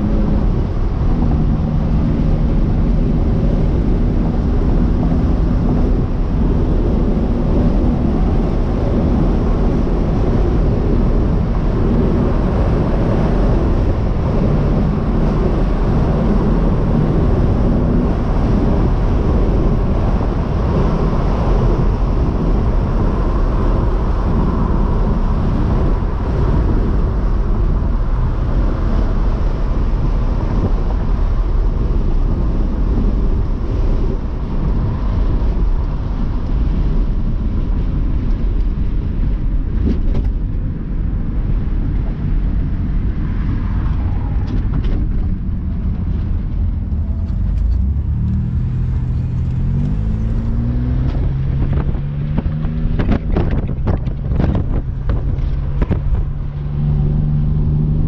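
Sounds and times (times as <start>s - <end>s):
car cabin road noise: 0.0s - 58.0s.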